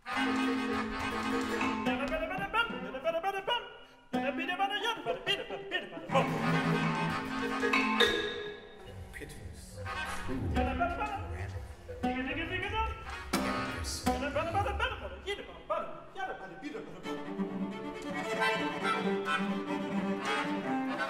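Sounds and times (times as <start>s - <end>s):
chamber strings: 0.0s - 3.0s, 6.1s - 16.0s, 16.7s - 21.0s
operatic singing: 0.0s - 21.0s.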